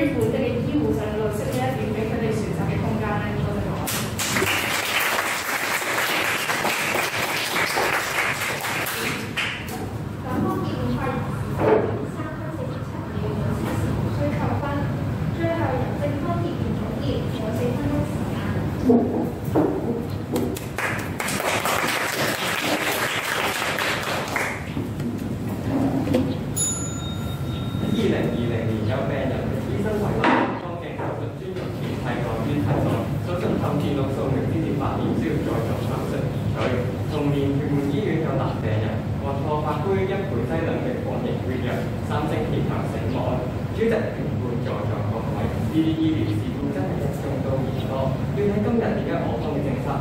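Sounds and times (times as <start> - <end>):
small group clapping: 3.9 - 9.8, 20.4 - 25.0
ringing chime: 26.6 - 28.1.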